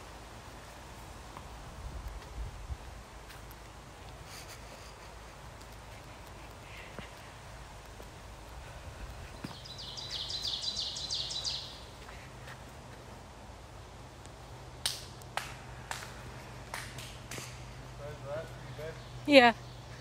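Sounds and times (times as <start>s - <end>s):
songbird trilling: 9.4s - 11.9s
footsteps snapping twigs: 14.2s - 17.8s.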